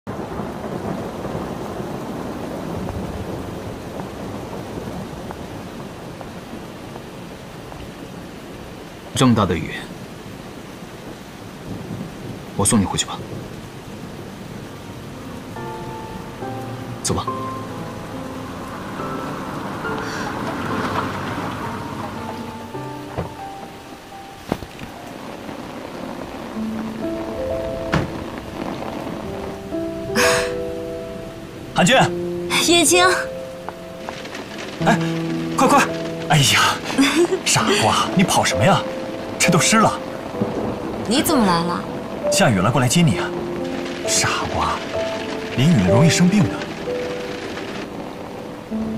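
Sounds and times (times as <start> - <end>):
heavy rain: 0.1 - 48.9
thunder rumbling: 0.1 - 48.9
score music of held notes: 14.5 - 48.9.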